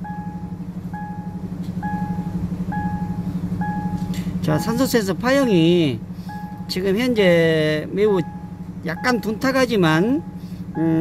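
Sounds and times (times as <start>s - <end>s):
electronic warning chime beeping: 0.0s - 6.9s, 8.0s - 11.0s
car engine idling: 0.0s - 11.0s.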